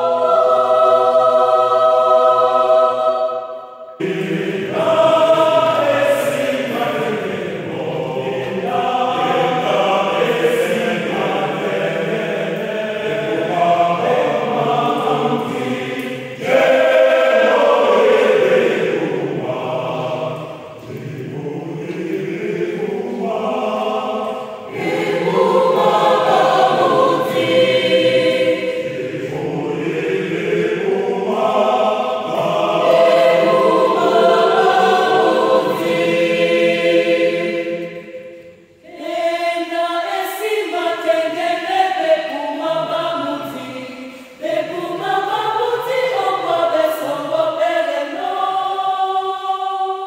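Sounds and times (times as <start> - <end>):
mixed choir singing a cappella: 0.0 - 50.0.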